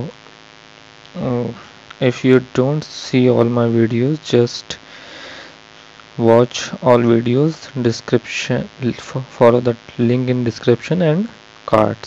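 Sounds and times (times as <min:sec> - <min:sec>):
electrical mains hum: 0:00.0 - 0:12.0
vocal hesitation sound: 0:01.1 - 0:05.4, 0:06.2 - 0:12.0.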